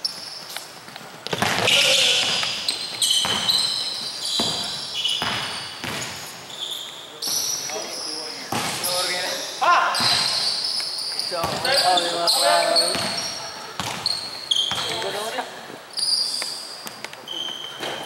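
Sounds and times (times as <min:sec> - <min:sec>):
sneakers squeaking: 0:00.0 - 0:18.0
basketball bouncing on court: 0:01.2 - 0:06.4, 0:08.5 - 0:08.8, 0:10.0 - 0:10.6, 0:11.3 - 0:12.0, 0:12.7 - 0:15.3.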